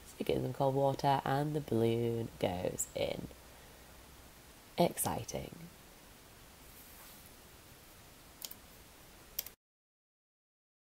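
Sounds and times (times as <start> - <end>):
short clicks: 8.4 - 8.6, 9.4 - 9.6.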